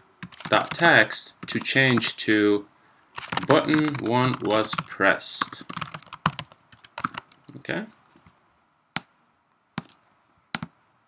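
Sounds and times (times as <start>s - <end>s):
keystrokes and mouse clicks: 0.0s - 2.1s, 3.2s - 7.5s.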